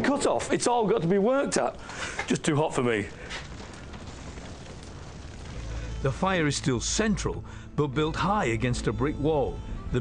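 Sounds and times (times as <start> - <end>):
fire burning with rushing noise: 1.8 - 6.8
low rumble: 3.1 - 7.6.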